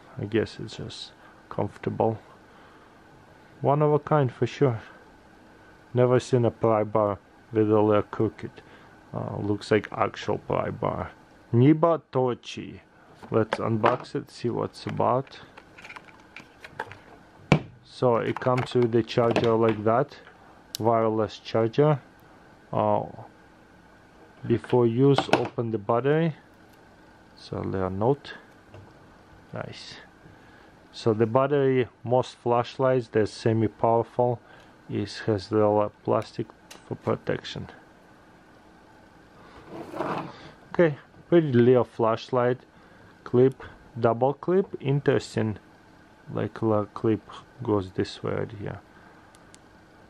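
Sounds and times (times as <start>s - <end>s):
faint steady hum: 0.0s - 50.0s.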